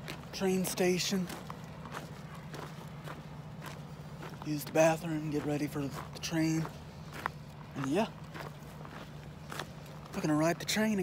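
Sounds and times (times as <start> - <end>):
soft footsteps walking: 0.0 - 11.0.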